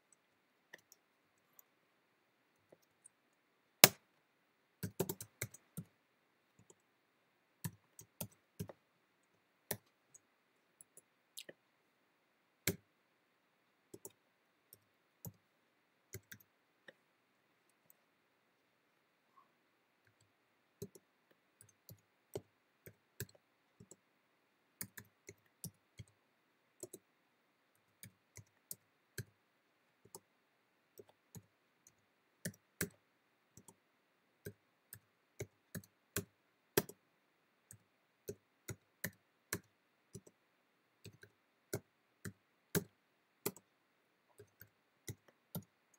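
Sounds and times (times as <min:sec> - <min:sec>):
computer keyboard keystrokes: 0:04.8 - 0:05.9, 0:42.2 - 0:43.6
computer keyboard typing: 0:04.8 - 0:05.9, 0:07.6 - 0:08.8, 0:20.1 - 0:21.0, 0:21.6 - 0:24.0, 0:24.8 - 0:26.2, 0:26.8 - 0:27.0, 0:34.4 - 0:37.0, 0:37.7 - 0:40.4, 0:41.0 - 0:43.7, 0:44.4 - 0:45.7.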